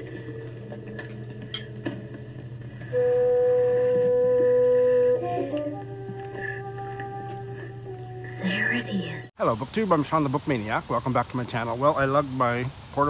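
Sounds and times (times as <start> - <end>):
old film score music: 0.0 - 9.3.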